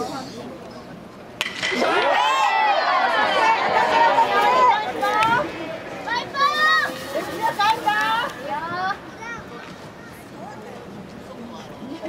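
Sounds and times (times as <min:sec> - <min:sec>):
bat hitting baseball: 0:01.4 - 0:02.2
crowd shouting and cheering: 0:01.4 - 0:10.1.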